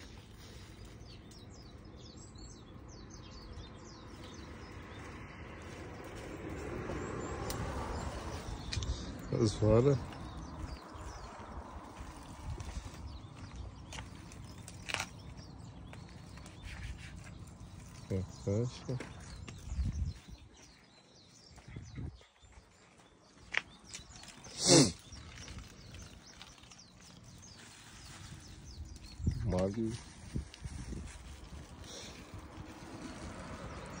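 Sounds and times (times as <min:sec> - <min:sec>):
wind rumble on microphone: 0:01.2 - 0:18.4, 0:19.0 - 0:20.7, 0:21.4 - 0:22.3, 0:27.2 - 0:34.0.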